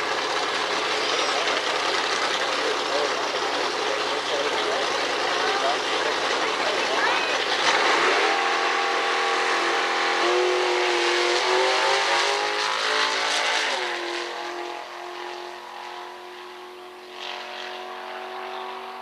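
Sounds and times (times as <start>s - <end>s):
drag car engine at full throttle: 0.0s - 19.0s.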